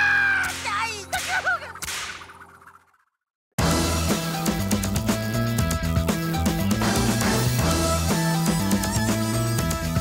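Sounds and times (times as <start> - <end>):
background music: 0.0 - 2.1, 3.6 - 10.0
cartoon character laughing: 1.0 - 1.9.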